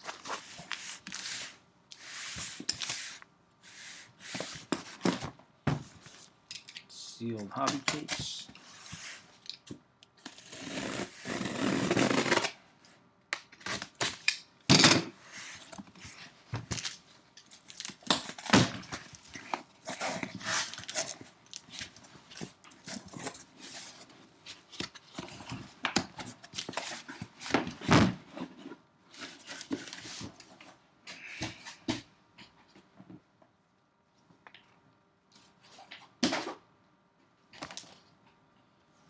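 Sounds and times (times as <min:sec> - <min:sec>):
cardboard tearing and rustling: 0:17.6 - 0:24.0.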